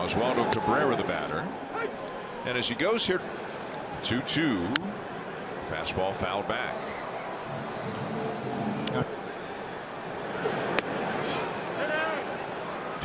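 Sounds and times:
crowd murmur: 3.1 - 13.0.

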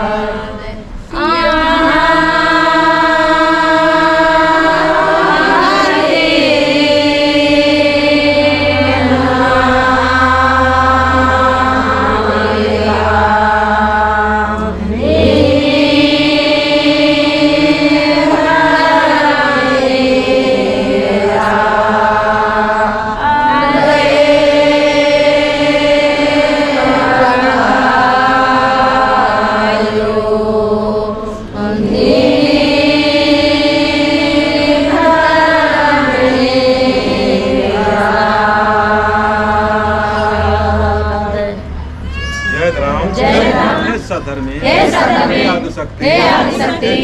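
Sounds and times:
women chanting in unison: 0.0 - 41.8, 43.1 - 44.0, 44.6 - 47.0.

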